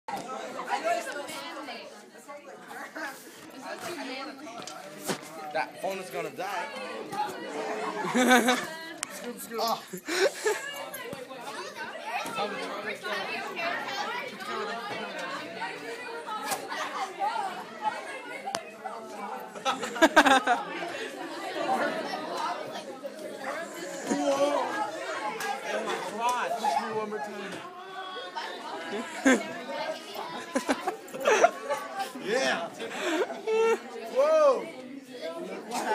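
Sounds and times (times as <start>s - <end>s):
young people chattering: 0.1s - 35.9s.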